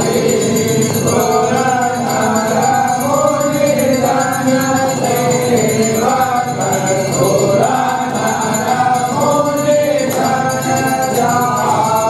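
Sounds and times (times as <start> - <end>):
voices singing a hymn together: 0.0 - 12.0.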